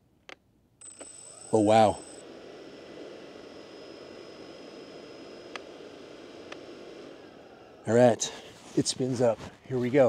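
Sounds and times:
drone propellers whirring: 0.8 - 9.3.

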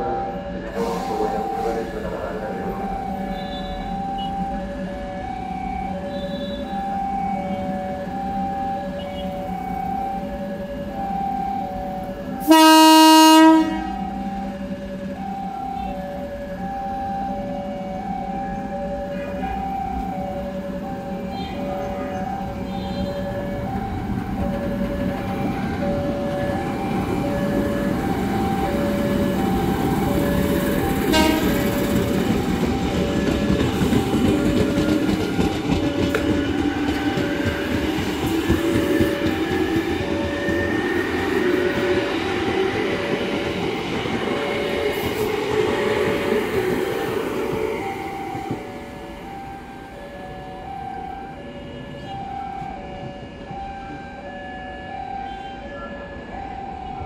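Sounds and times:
train horn blast: 3.3 - 4.3, 12.4 - 14.1, 31.1 - 31.8
electric train motors whining: 13.4 - 55.0.

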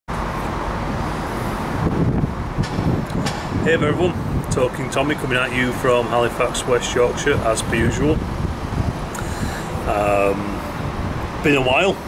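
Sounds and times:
road traffic: 0.1 - 12.0.

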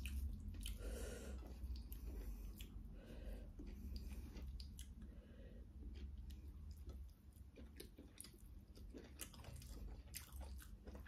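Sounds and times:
person chewing with wet smacks: 0.0 - 11.0.

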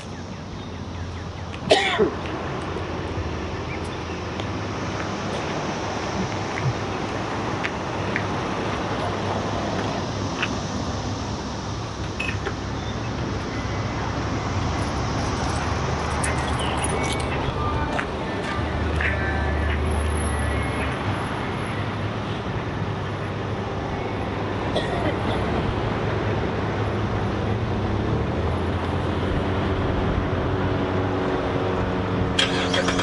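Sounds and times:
roadside traffic hum: 0.0 - 33.0
vehicle engine: 0.0 - 33.0
person coughing: 1.7 - 2.2, 24.8 - 25.4.

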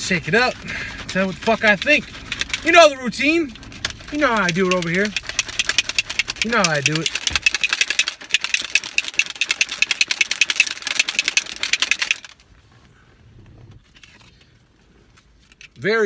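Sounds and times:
shaker bottle sloshing rattles: 0.0 - 12.4.

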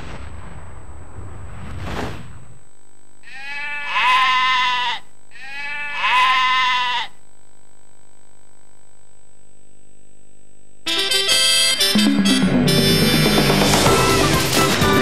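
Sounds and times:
sheep bleating: 3.2 - 7.2.

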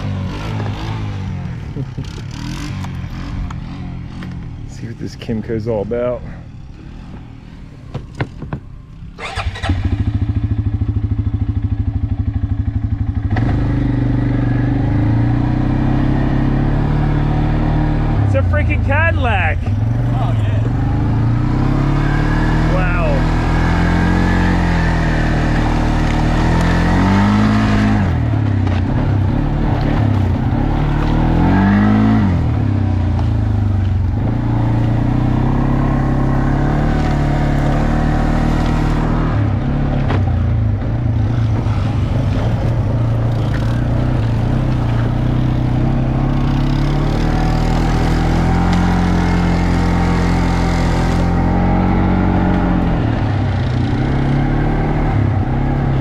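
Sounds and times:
atv engine starting and revving: 0.0 - 4.7, 9.1 - 18.9, 19.5 - 56.0.

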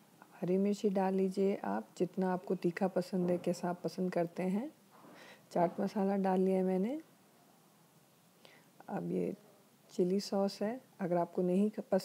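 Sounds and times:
woman speaking: 0.3 - 4.8, 5.5 - 7.1, 8.8 - 12.0.

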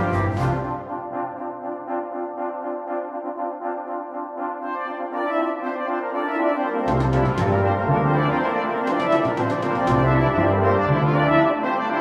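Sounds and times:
brass band music: 0.0 - 12.0.

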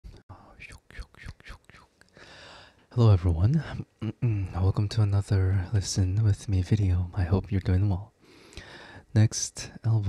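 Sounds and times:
man whispering: 0.1 - 2.1, 2.8 - 8.1, 9.0 - 10.0.

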